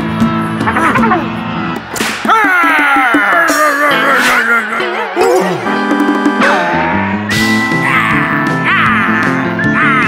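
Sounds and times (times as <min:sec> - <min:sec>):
cartoon background music: 0:00.6 - 0:01.4, 0:02.3 - 0:10.0.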